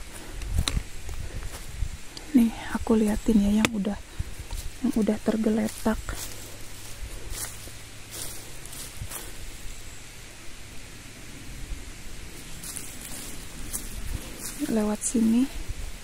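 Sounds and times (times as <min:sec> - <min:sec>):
footsteps in dry leaves: 0:00.0 - 0:10.2, 0:11.7 - 0:16.0.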